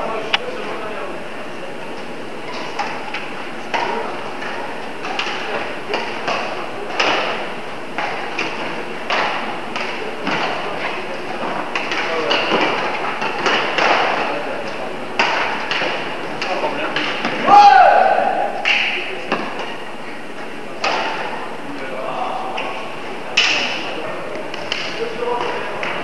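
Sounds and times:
background hiss and murmur: 0.0s - 26.0s
racket striking shuttlecock: 2.5s - 10.6s, 11.7s - 14.3s, 15.2s - 17.4s.

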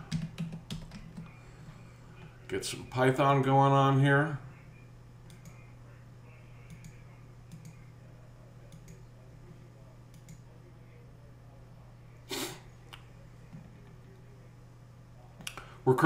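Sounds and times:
low electrical hum: 0.0s - 16.0s
computer mouse clicks: 5.2s - 5.6s, 6.7s - 7.8s, 8.7s - 9.0s, 10.1s - 10.4s.

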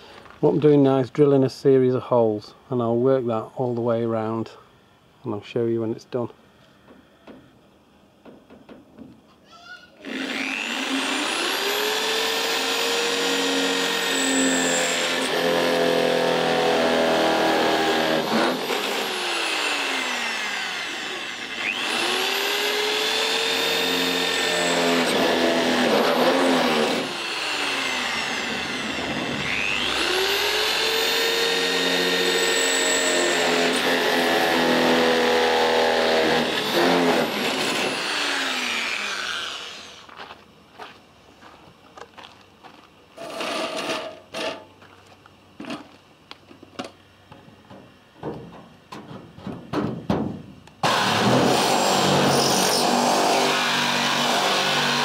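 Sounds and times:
power drill boring through steel: 10.0s - 40.1s, 50.8s - 55.0s.

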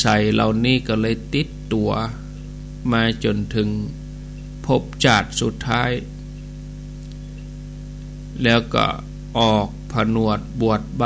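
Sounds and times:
man speaking: 0.0s - 4.0s, 4.6s - 6.1s, 8.4s - 11.0s
electrical mains hum: 0.0s - 11.0s.

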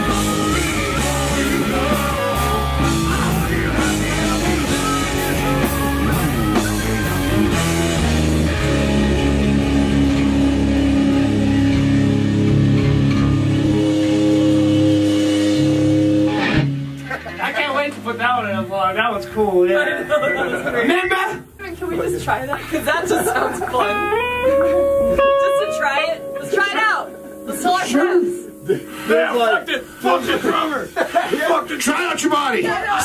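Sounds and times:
live rock band playing: 0.0s - 20.7s, 21.8s - 31.0s.

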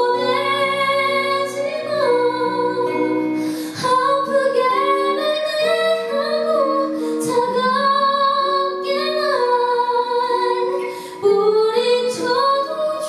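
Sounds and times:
soft instrumental accompaniment: 0.0s - 13.0s
woman singing a ballad: 0.0s - 13.0s.

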